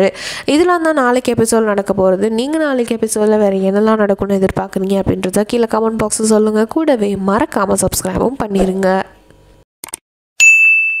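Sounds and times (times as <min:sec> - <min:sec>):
notification bell ding: 0:10.4 - 0:11.0.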